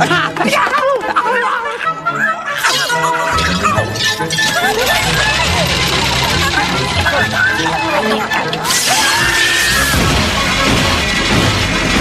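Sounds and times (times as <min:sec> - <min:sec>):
shrill cartoon voices yelling: 0:00.4 - 0:10.0
dramatic music with deep bass: 0:02.8 - 0:12.0
shattering crash: 0:08.8 - 0:12.0.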